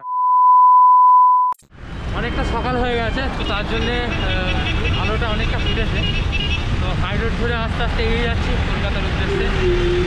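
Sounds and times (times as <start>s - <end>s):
road and traffic noise: 1.6s - 10.0s.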